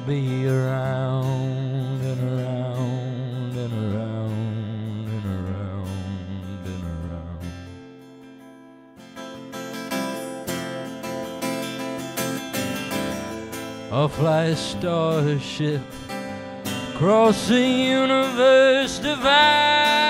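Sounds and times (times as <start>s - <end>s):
person singing with vibrato: 0.0s - 8.0s, 13.4s - 20.0s
acoustic guitar strumming: 0.0s - 20.0s.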